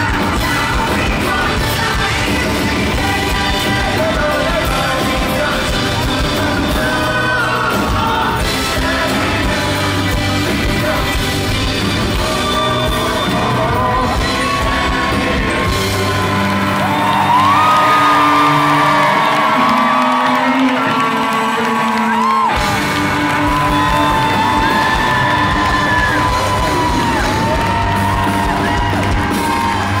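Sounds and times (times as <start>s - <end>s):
lead vocal holding long notes: 0.0s - 30.0s
live pop-rock band playing: 0.0s - 30.0s.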